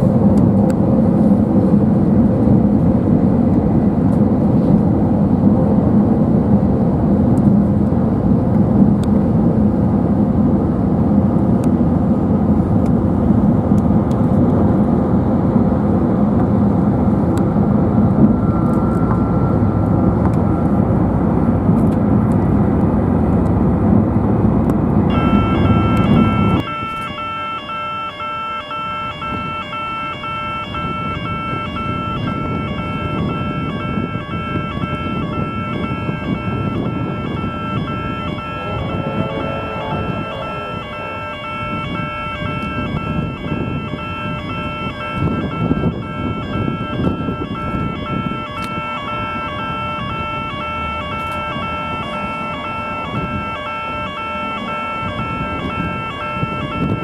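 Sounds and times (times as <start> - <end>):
loud low rumble: 0.0 - 27.0, 30.8 - 48.4
distant traffic: 0.0 - 57.0
level crossing warning bells: 25.0 - 57.0.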